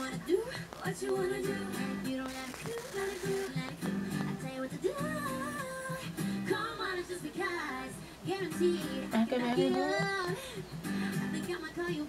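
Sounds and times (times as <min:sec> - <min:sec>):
female vocal group singing: 0:00.0 - 0:10.5
acoustic guitar: 0:00.0 - 0:12.0.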